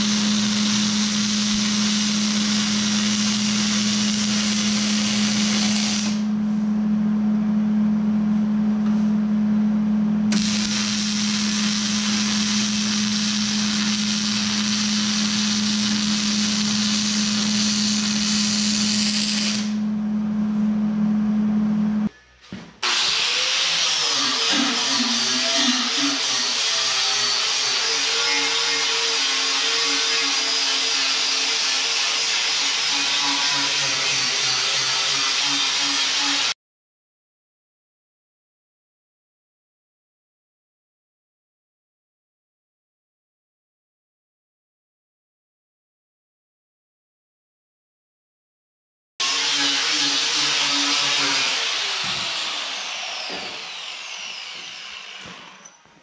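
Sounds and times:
angle grinder grinding steel: 0.0 - 6.2, 10.3 - 19.8, 22.8 - 36.6, 49.2 - 55.8
welding arc crackling: 0.0 - 6.3, 10.3 - 19.8.

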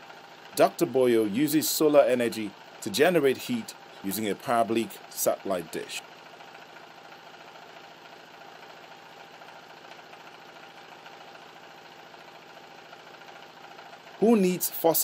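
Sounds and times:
faint motor hum: 0.0 - 15.0.

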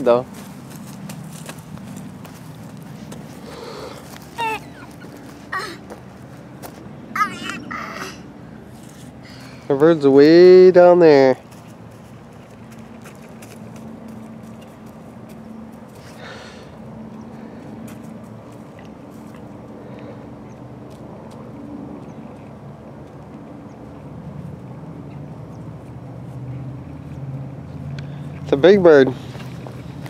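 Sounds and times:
distant vehicle engine humming: 0.0 - 30.0
outdoor noise: 0.0 - 30.0.

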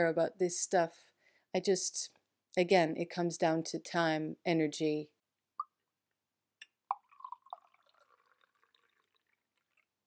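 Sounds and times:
tea pouring into mug: 6.9 - 10.0.

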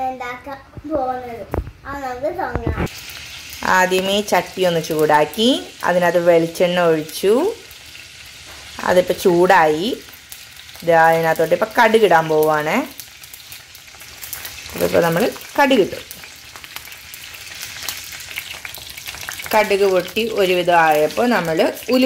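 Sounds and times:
oil sizzling in a pot: 2.4 - 22.0.

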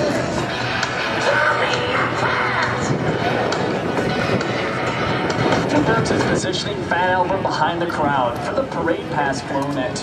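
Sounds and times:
faint voices over loudspeakers: 0.0 - 10.0
music over loudspeakers: 0.0 - 10.0
turboprop plane flying overhead: 0.0 - 10.0.

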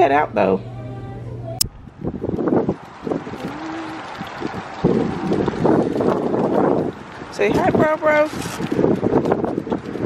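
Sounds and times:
wind buffeting microphone: 1.6 - 10.0.

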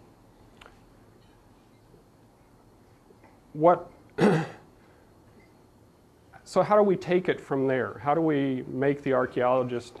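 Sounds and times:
man coughing: 4.2 - 4.7.

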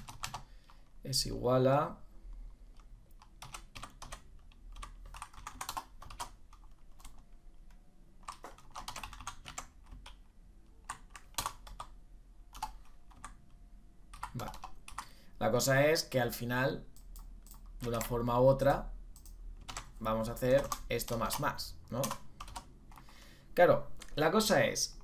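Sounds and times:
computer keyboard typing: 0.0 - 0.9, 2.7 - 7.3, 8.2 - 13.4, 14.1 - 15.1, 16.9 - 18.2, 19.2 - 23.1.

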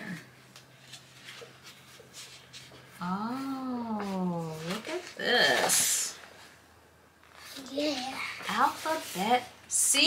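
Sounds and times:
paper pages rustling: 0.5 - 3.0, 4.0 - 5.9.

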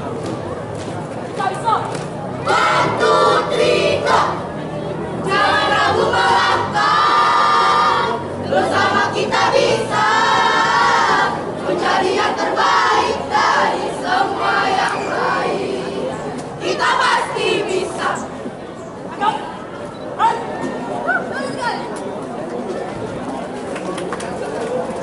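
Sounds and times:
girls chanting in unison: 2.4 - 4.4, 5.2 - 16.0, 16.6 - 18.3.

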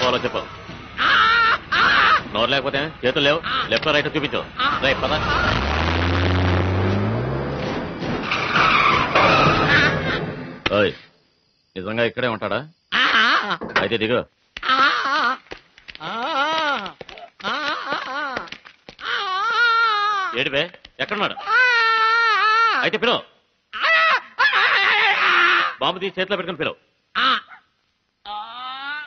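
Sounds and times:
tyres screeching: 0.0 - 11.1
car engine revving: 2.3 - 10.7.

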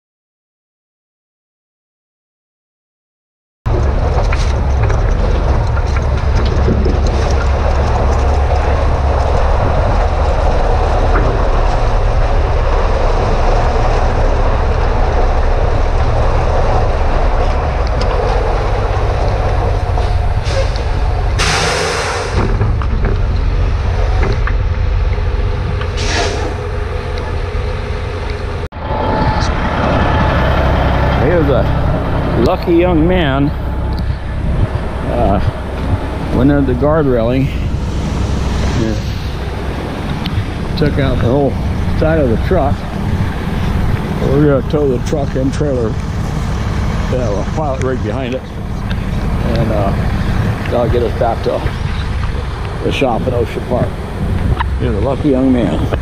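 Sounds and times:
truck engine rumble: 3.7 - 56.0
tyres on road: 3.7 - 56.0
wind on microphone: 3.7 - 56.0.

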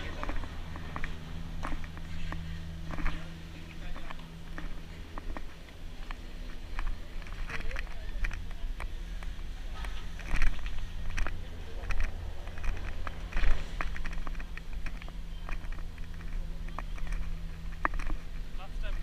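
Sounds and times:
footsteps and camera handling knocks: 0.0 - 3.2, 3.9 - 19.0
steady low rumble: 0.0 - 19.0.

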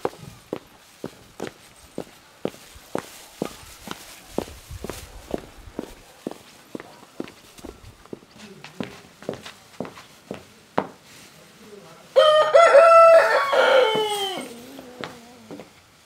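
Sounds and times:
heeled footsteps on dirt: 0.0 - 11.0, 13.6 - 15.7.

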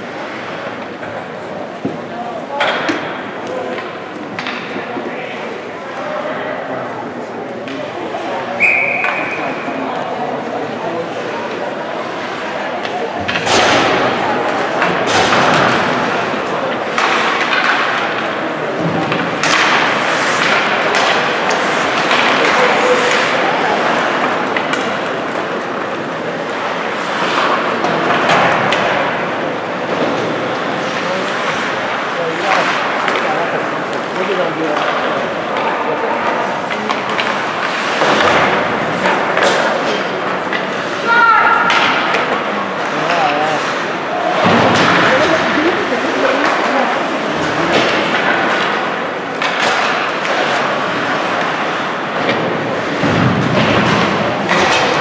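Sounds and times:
hockey impacts against boards: 0.0 - 5.4, 10.9 - 55.0
hubbub of voices: 0.0 - 55.0.

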